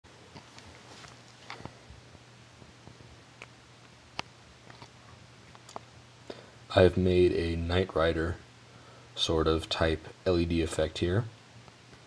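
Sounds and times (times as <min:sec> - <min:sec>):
faint low hum: 0:00.1 - 0:12.0.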